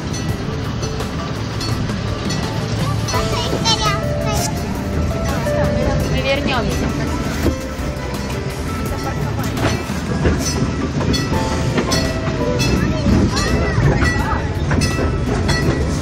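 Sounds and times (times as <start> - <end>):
train wheels rumbling: 0.0 - 16.0
wheels clattering over rails: 0.0 - 16.0.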